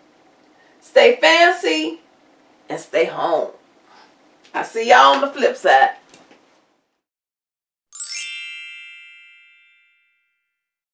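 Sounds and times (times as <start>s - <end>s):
bright ringing chime with upward sweep: 7.9s - 10.5s.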